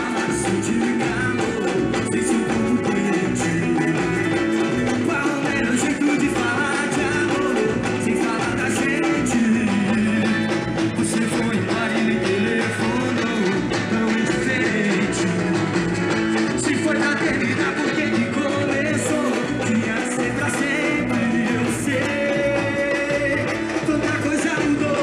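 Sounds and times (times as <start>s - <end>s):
band playing drums and instruments: 0.0s - 25.0s
person singing: 0.0s - 25.0s.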